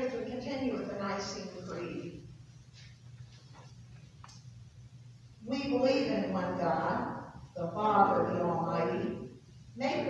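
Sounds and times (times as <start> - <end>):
woman speaking: 0.0 - 2.3, 5.4 - 10.0.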